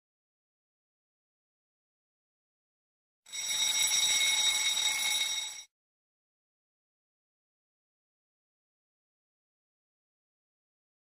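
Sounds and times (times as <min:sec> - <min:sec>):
alarm clock ringing: 0:03.3 - 0:05.7.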